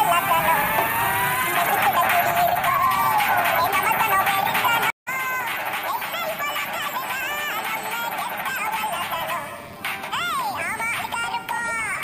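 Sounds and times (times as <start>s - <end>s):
backing music: 0.0s - 11.2s
pitched cartoon singing voice: 0.0s - 12.0s.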